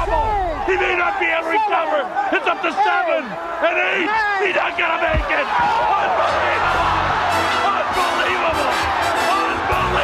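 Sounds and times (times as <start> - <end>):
excited men commentating: 0.0 - 10.0.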